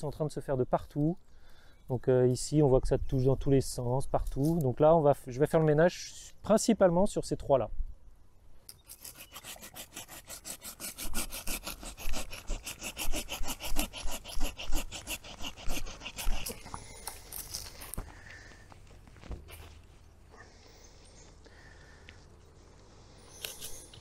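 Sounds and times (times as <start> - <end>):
hand saw cutting wood: 8.8 - 18.0.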